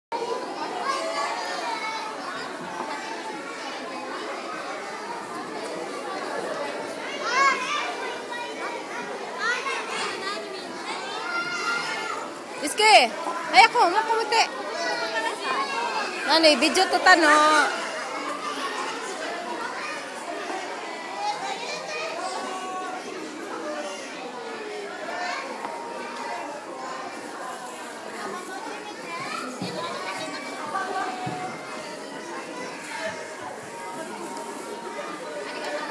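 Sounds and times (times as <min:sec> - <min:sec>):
adults talking: 0:00.1 - 0:35.9
children chattering and calling out: 0:00.1 - 0:35.9.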